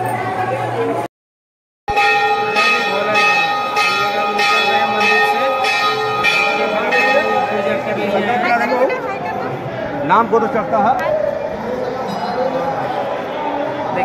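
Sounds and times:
temple bell ringing: 0:01.9 - 0:08.9.

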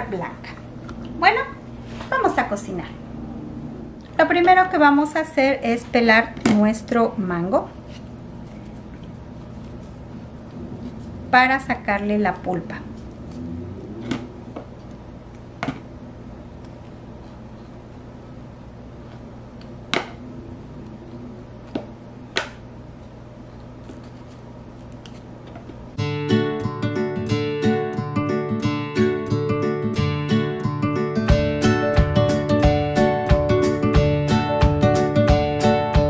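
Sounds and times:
low steady hum: 0:00.0 - 0:26.2
strummed acoustic guitar: 0:26.0 - 0:36.0.

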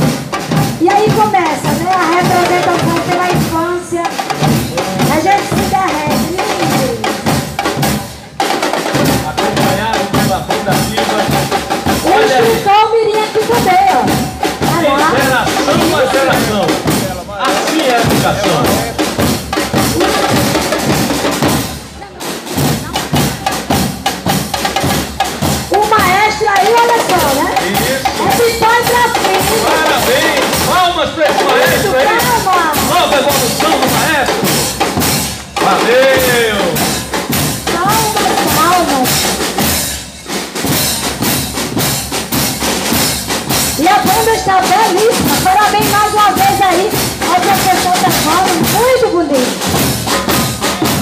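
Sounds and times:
bass drums: 0:00.0 - 0:51.0
marching drum line: 0:00.0 - 0:51.0
snare drums: 0:00.0 - 0:51.0.

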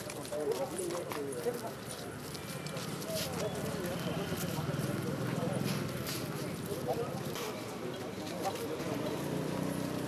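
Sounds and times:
indistinct talk of people: 0:00.0 - 0:10.0.

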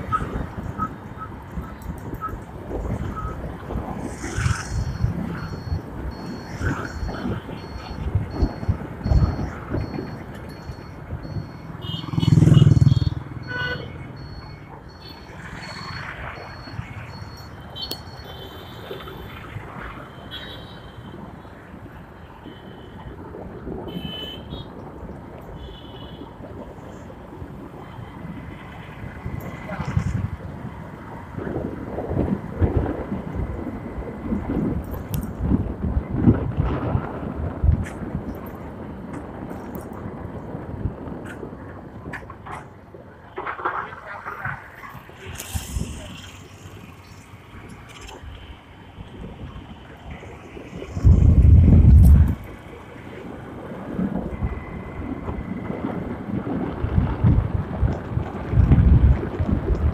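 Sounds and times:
wind buffeting microphone: 0:00.0 - 0:11.5, 0:26.2 - 0:59.9
faint high beep: 0:04.4 - 0:18.8
motorcycle engine: 0:11.3 - 0:13.8.

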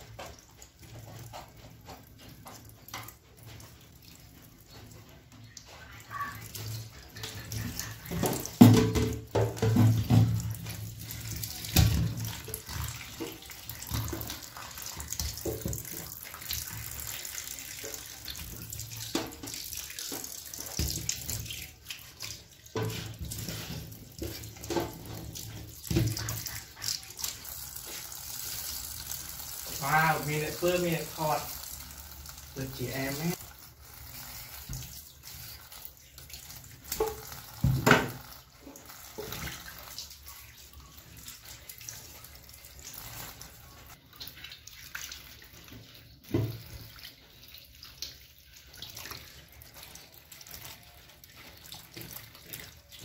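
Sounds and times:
knocks in metal sink: 0:08.1 - 0:10.5, 0:37.0 - 0:38.2.

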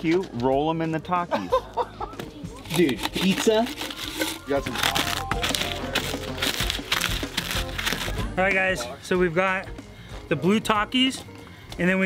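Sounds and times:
background music: 0:00.0 - 0:12.0
crisps crunching by hand: 0:02.6 - 0:08.4.

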